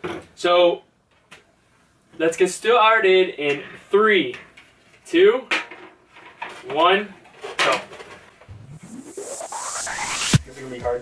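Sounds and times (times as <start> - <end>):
rising synth sweep: 8.5 - 10.8
electronic dance music: 8.5 - 11.0.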